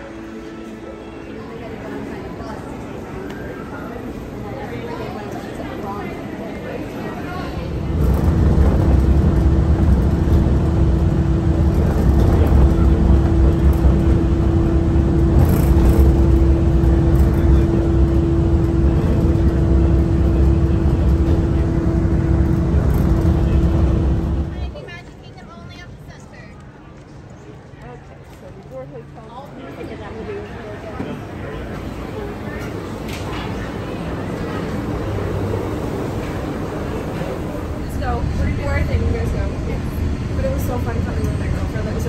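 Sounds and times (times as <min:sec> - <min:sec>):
monorail train rumbling: 0:00.0 - 0:42.0.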